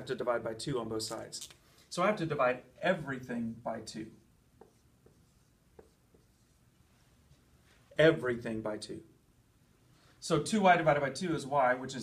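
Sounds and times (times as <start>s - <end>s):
marker writing on a whiteboard: 3.8s - 7.5s.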